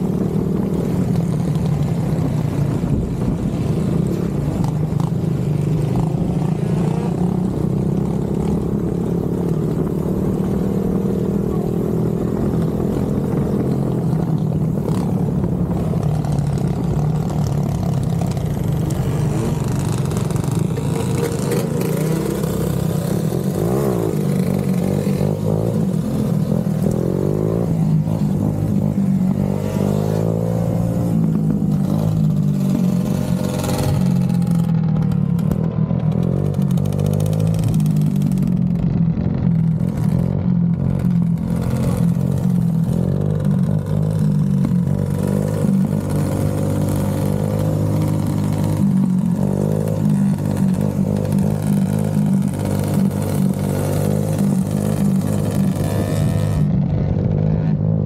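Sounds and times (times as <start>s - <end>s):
engines revving: 0.0s - 58.0s.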